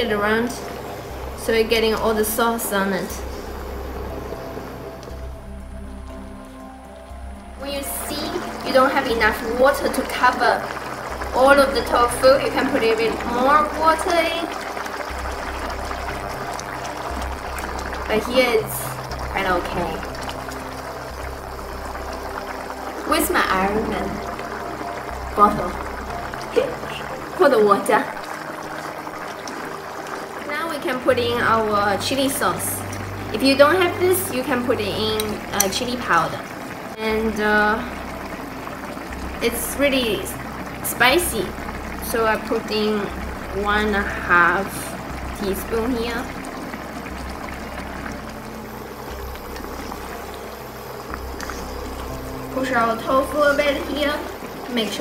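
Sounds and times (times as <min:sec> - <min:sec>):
low hum: 0:00.0 - 0:55.0
sauce bubbling in a pan: 0:00.0 - 0:55.0.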